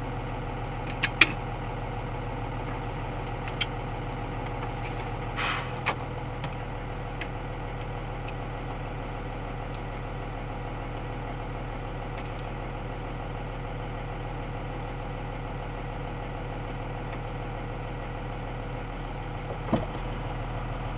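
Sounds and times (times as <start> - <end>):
truck engine idling: 0.0 - 20.9.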